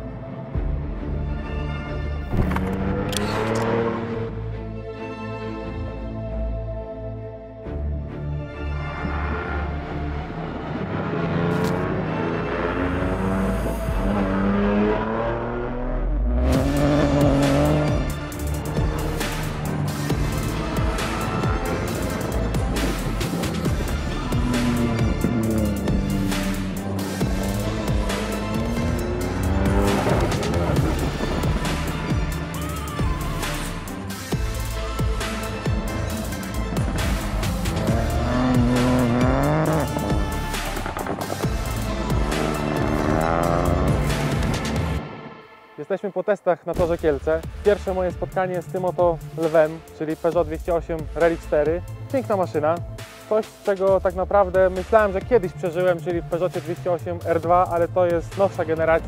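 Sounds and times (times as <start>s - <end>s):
background music: 0.0s - 59.0s
rally car engine: 2.2s - 4.5s, 8.8s - 45.4s.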